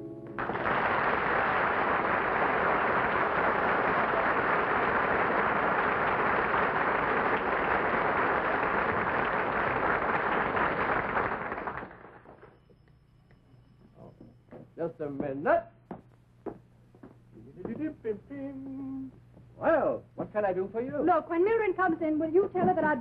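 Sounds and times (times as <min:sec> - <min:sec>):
audience applauding: 0:00.3 - 0:12.5.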